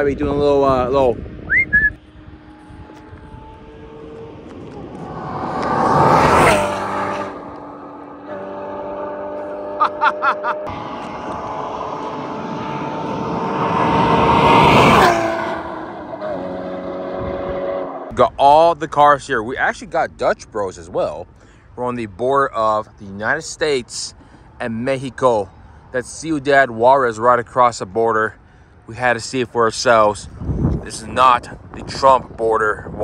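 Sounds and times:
cars passing at speed: 0:01.2 - 0:18.1.

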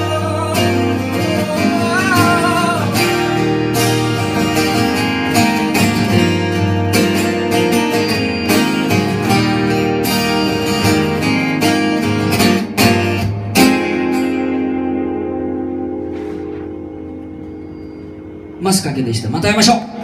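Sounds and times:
acoustic guitars strumming: 0:00.0 - 0:18.9.

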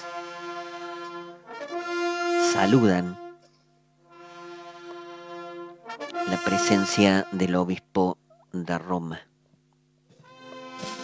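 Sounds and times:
military wind band sustained chord: 0:00.0 - 0:07.9, 0:10.1 - 0:11.0.

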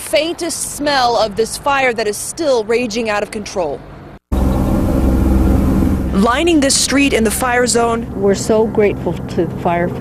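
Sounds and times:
low engine rumble: 0:01.1 - 0:10.0.

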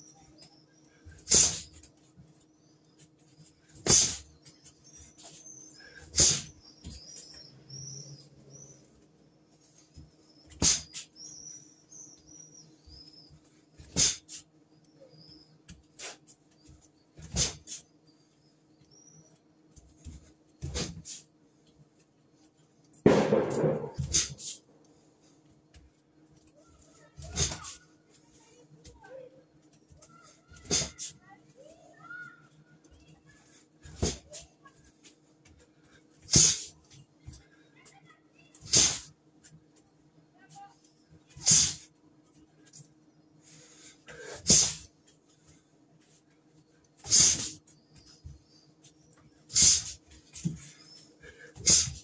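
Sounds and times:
sharp smack: 0:23.1 - 0:24.5
person exhaling forcefully: 0:51.3 - 0:52.0.

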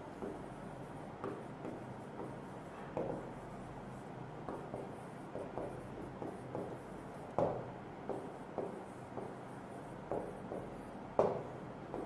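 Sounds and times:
marker writing on whiteboard: 0:00.0 - 0:12.0.

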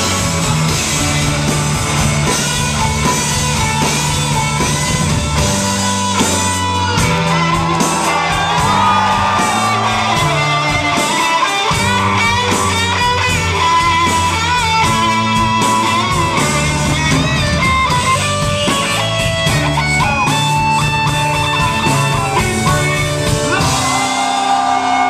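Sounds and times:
electric guitar lead line: 0:00.0 - 0:25.0
live rock band: 0:00.0 - 0:25.0.

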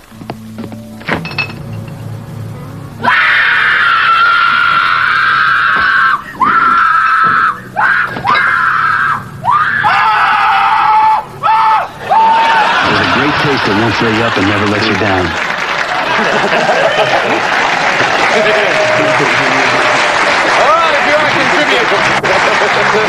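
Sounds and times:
person screaming: 0:03.0 - 0:12.7.

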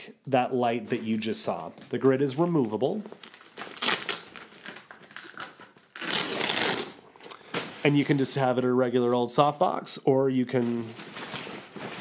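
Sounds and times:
hook-and-loop fastening ripping: 0:03.3 - 0:07.0.

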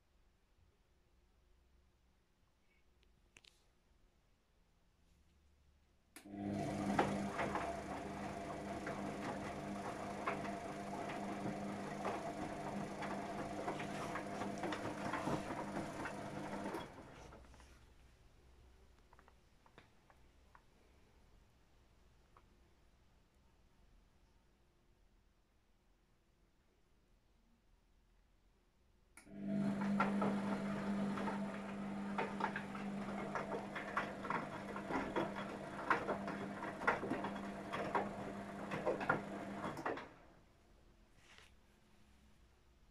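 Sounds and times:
washing machine motor hum: 0:06.2 - 0:17.4, 0:29.2 - 0:40.4.

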